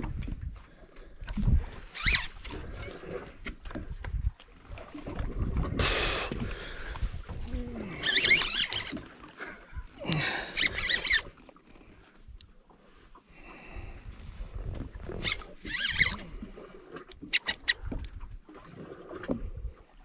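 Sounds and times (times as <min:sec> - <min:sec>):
low boat rumble: 0:00.0 - 0:20.0
reel clicking: 0:01.7 - 0:03.0, 0:07.9 - 0:09.1, 0:10.1 - 0:11.6, 0:15.0 - 0:16.4, 0:17.0 - 0:18.2.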